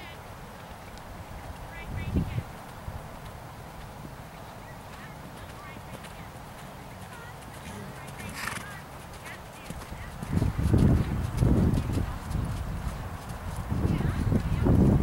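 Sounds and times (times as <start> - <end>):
horse hoofbeats on sand: 1.5 - 15.0.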